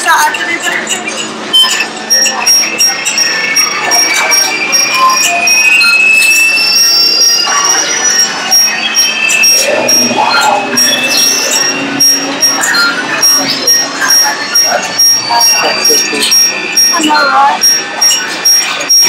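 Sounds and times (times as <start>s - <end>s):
indistinct chatter: 0.0s - 19.0s
high-pitched beep: 0.6s - 19.0s.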